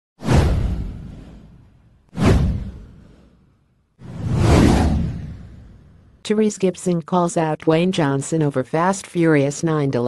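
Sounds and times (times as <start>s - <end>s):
whoosh sound effect: 2.2s - 6.0s.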